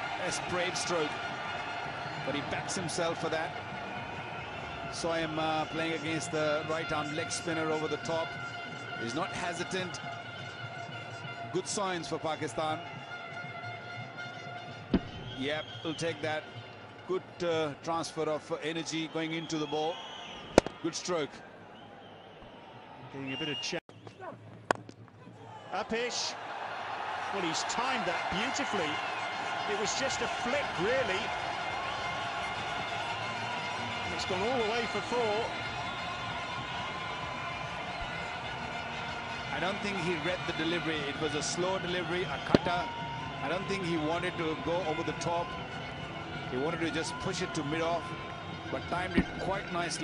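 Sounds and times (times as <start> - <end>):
stadium crowd cheering: 0.0 - 50.0
cricket bat striking ball: 20.6 - 20.8.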